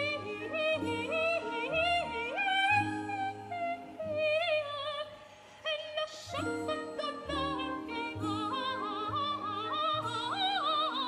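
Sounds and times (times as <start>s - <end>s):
operatic soprano singing: 0.0s - 11.0s
orchestral accompaniment: 6.3s - 11.0s.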